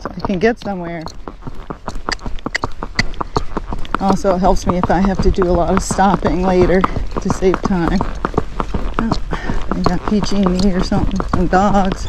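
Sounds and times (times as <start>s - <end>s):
horse hooves on pavement: 0.0s - 12.0s.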